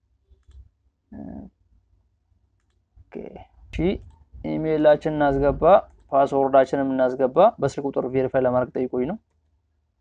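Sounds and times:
faint clicks: 0.3s - 0.7s, 2.6s - 2.8s, 4.0s - 4.3s
low steady hum: 3.0s - 9.2s.

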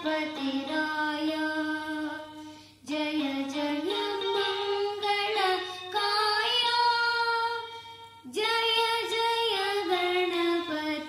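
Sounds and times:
boy singing devotional song: 0.0s - 11.0s.

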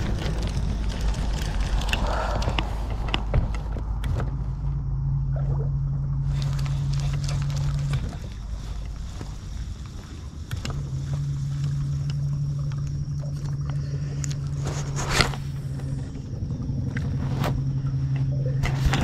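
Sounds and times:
boat motor humming: 0.0s - 19.0s.

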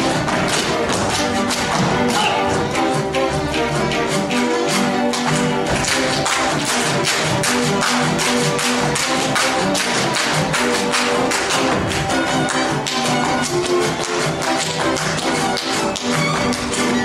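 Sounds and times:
boots stamping on stage: 0.0s - 3.6s, 5.0s - 17.0s
folk dance music: 0.0s - 17.0s.

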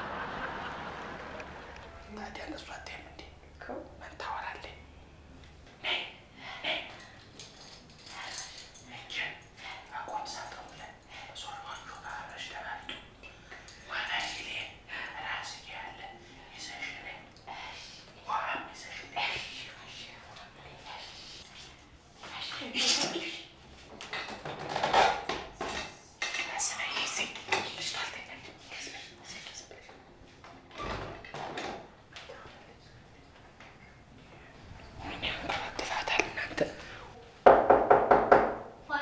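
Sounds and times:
conversational voices: 32.1s - 37.4s.

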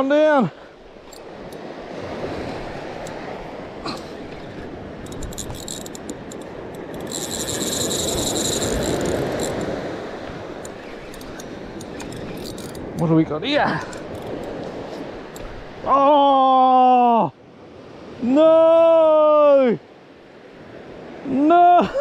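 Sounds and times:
surf washing on beach: 0.0s - 22.0s
fishing reel drag buzzing: 1.0s - 1.7s, 4.0s - 13.0s, 13.9s - 15.4s
fishing reel clicks: 1.1s - 1.7s, 5.0s - 13.1s, 13.8s - 14.6s.

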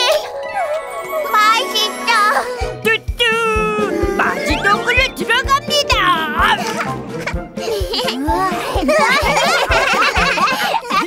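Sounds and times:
bright background music: 0.0s - 11.0s
cartoon voices laughing: 6.3s - 11.0s.

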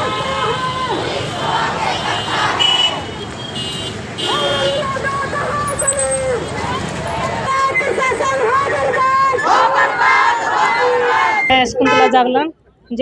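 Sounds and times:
crowd chanting slogans: 0.0s - 3.4s, 4.0s - 11.5s
long shouted calls: 7.5s - 11.5s.

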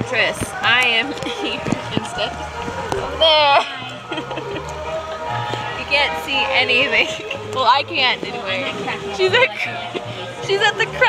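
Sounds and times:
indistinct voices talking: 0.0s - 11.0s.

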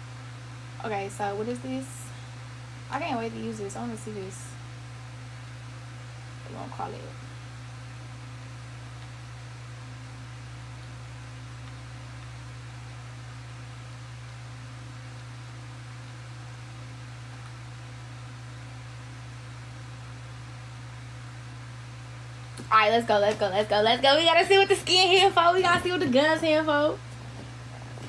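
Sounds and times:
steady low hum: 0.0s - 28.0s.

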